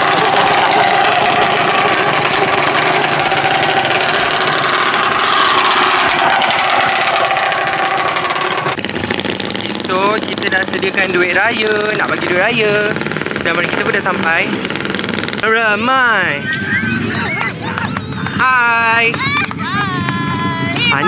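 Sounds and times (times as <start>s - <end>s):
voices: 0.0s - 14.7s, 15.4s - 21.0s
small motorcycles riding past: 0.0s - 21.0s.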